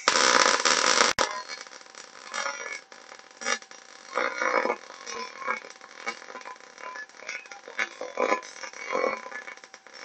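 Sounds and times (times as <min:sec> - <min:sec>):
welding arc on steel: 0:00.0 - 0:10.0.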